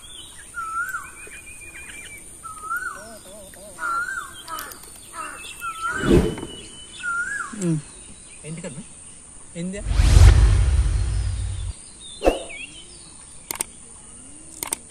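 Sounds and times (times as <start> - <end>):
bird whistled call: 5.6 - 7.6.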